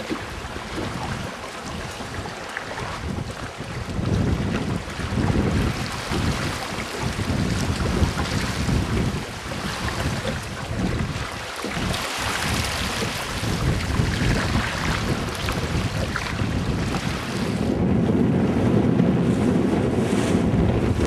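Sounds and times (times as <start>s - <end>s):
water rushing along a hull: 0.0s - 21.0s
wind buffeting the microphone: 0.0s - 21.0s.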